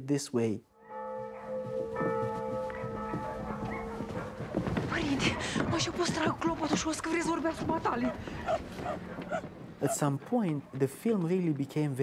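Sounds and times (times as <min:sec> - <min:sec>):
church bell ringing: 0:00.7 - 0:07.4
scattered knocks: 0:01.6 - 0:09.8.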